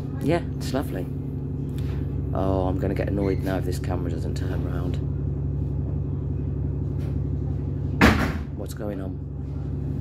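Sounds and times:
bus engine droning: 0.0 - 10.0.

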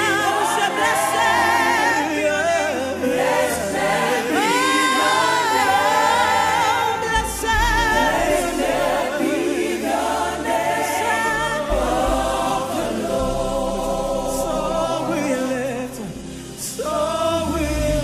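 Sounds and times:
gospel group singing: 0.0 - 18.0.

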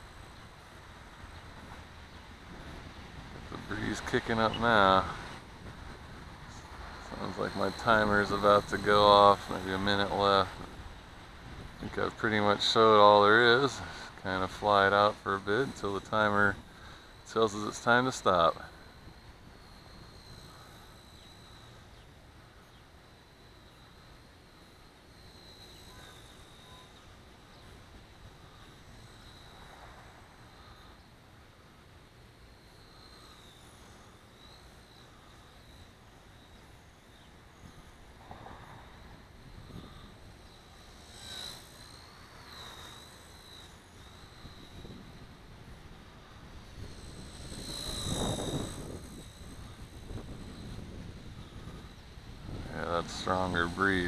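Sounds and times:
rc helicopter motor whine: 0.0 - 54.0
wind buffeting microphone: 1.2 - 13.4, 44.4 - 54.0.

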